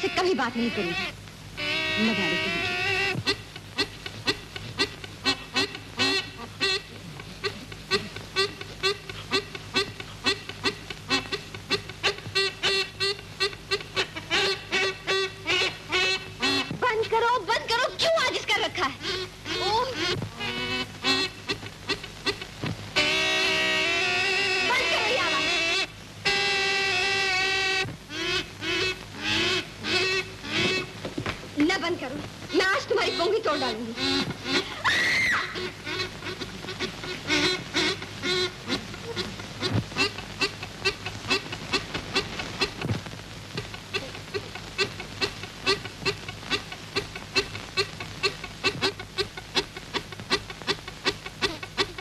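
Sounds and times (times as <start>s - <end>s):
pungi playing fast reedy tune: 0.0s - 17.4s, 19.0s - 31.0s, 32.5s - 52.0s.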